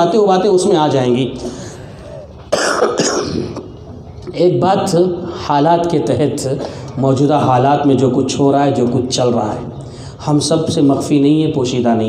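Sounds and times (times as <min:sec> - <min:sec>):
man clearing throat: 0:02.4 - 0:03.8.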